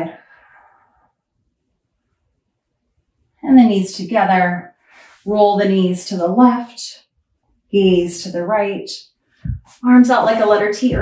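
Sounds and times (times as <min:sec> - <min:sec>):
woman speaking: 0:00.0 - 0:00.4, 0:03.4 - 0:04.6, 0:05.2 - 0:07.0, 0:07.8 - 0:11.0.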